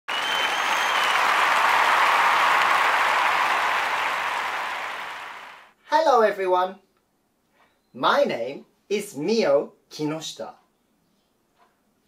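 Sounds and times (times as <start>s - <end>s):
high whistle: 0.1s - 3.8s
audience applause: 0.1s - 5.7s.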